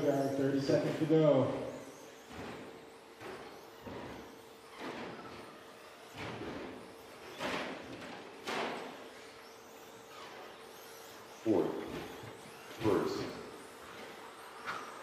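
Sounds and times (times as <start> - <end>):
rc truck motors and tyres passing: 0.0 - 15.0.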